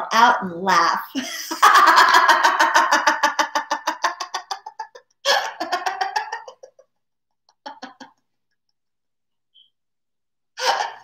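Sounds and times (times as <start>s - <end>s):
woman laughing heartily: 1.2s - 8.4s.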